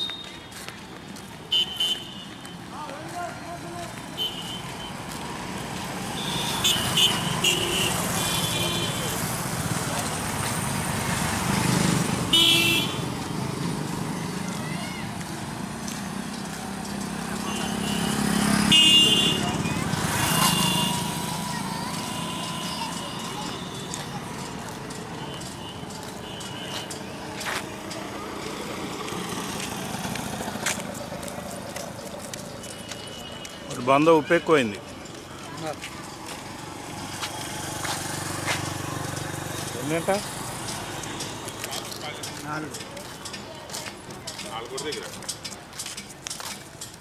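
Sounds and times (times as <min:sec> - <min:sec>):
people's voices: 0:00.0 - 0:47.0
vehicles passing: 0:00.0 - 0:47.0
car horn toots: 0:12.3 - 0:13.0, 0:17.4 - 0:19.6.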